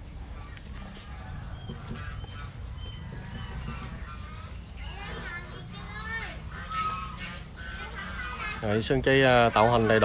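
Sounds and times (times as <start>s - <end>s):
distant high-pitched voices calling: 0.0s - 10.0s.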